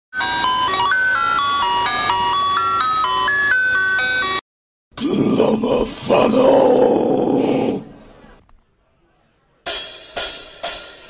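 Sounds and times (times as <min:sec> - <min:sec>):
ice cream truck chime jingle: 0:00.1 - 0:04.4.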